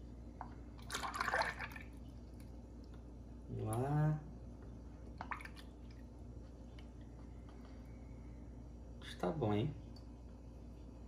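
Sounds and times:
liquid pouring and splashing: 0:00.4 - 0:02.9, 0:05.1 - 0:06.1.

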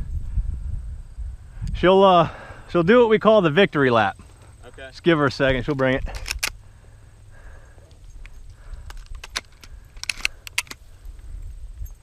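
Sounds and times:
wind rumble on microphone: 0:00.0 - 0:02.0, 0:10.8 - 0:12.0
metallic jingles and clicks: 0:05.6 - 0:06.6, 0:07.6 - 0:11.1, 0:11.7 - 0:12.0.

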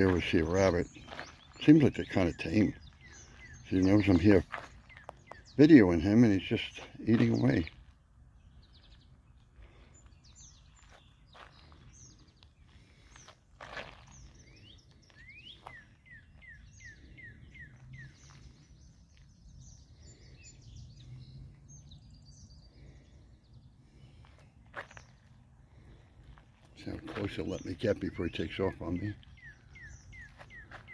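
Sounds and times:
birds chirping: 0:00.0 - 0:30.9.

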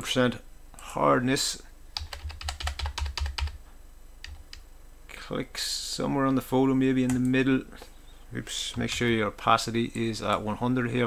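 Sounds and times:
computer keyboard keystrokes: 0:02.0 - 0:03.6, 0:04.2 - 0:04.6.

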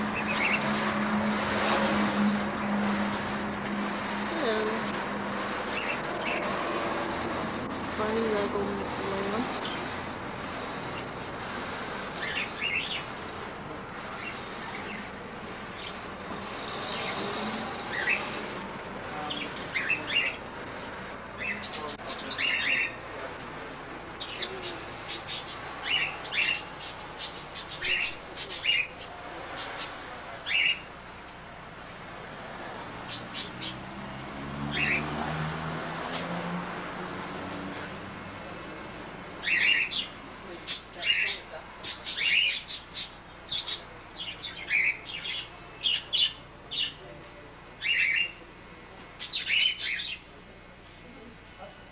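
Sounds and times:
parakeets chirping: 0:00.0 - 0:31.5, 0:32.3 - 0:38.8, 0:39.4 - 0:47.1, 0:47.8 - 0:50.3.

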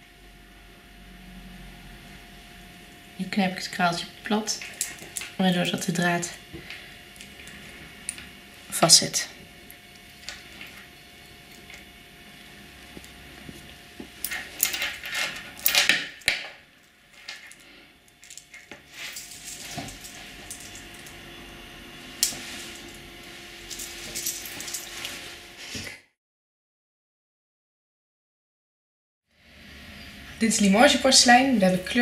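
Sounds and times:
beads and metal parts clinking: 0:04.5 - 0:05.8, 0:14.2 - 0:21.2, 0:22.2 - 0:23.0, 0:23.6 - 0:25.1.

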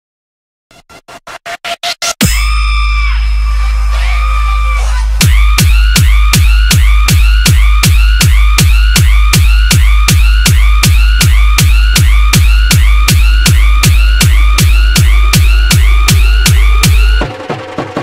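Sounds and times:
electronic dance music: 0:00.7 - 0:18.0
pounding kick-drum beat: 0:02.2 - 0:18.0.

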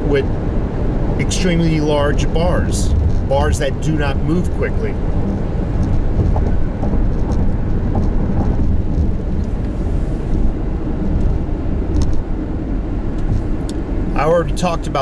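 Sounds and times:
car cabin road and engine rumble: 0:00.0 - 0:15.0.

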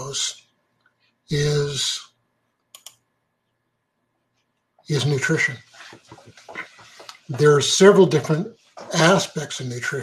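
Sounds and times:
computer mouse clicks: 0:02.6 - 0:03.0.

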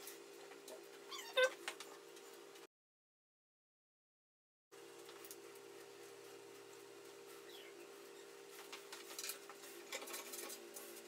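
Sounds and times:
dog whining: 0:01.1 - 0:01.6.

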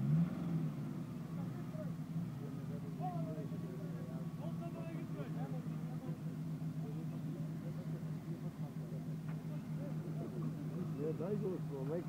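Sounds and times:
engine at low revs: 0:00.0 - 0:12.0
people talking: 0:01.3 - 0:12.0.

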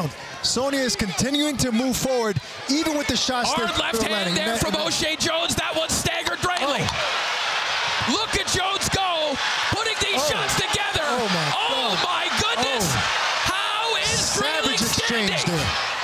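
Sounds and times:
crowd yelling and cheering: 0:00.0 - 0:16.0.

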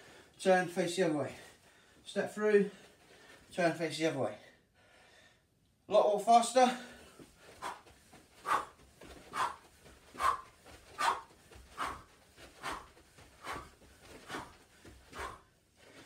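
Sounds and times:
footwork steps: 0:01.3 - 0:03.8, 0:06.2 - 0:16.0
man's forceful breaths out: 0:06.8 - 0:16.0.

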